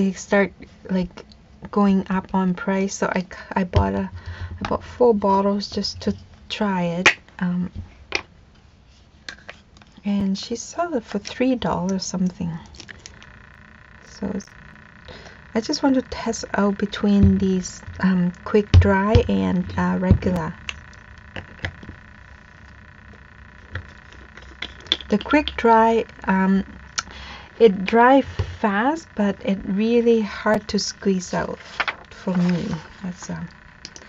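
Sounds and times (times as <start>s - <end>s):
faint background hum: 0.0s - 34.0s.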